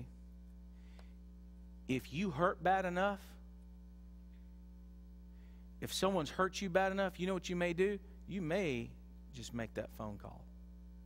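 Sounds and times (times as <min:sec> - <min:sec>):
low electrical mains hum: 0:00.0 - 0:11.0
man speaking: 0:01.9 - 0:03.4, 0:05.8 - 0:10.5.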